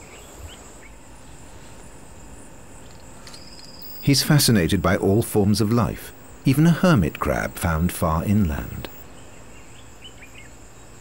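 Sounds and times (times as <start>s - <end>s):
high insect drone: 0.0s - 11.0s
faint bird chirps: 2.8s - 6.6s.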